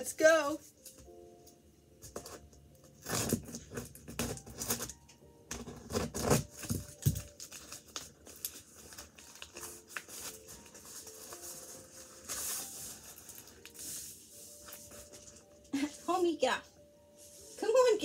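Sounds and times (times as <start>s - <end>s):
hands scraping and tearing cardboard: 2.1s - 15.4s.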